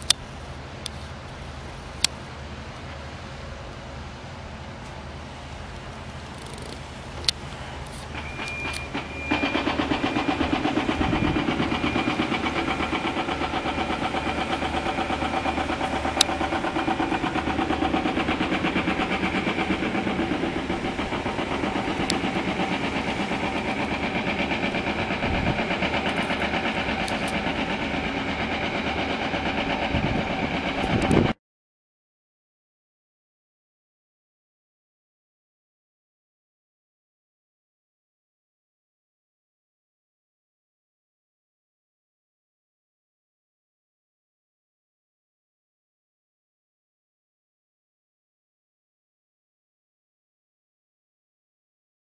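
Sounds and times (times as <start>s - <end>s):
machinery engine pulsing: 0.0s - 31.4s.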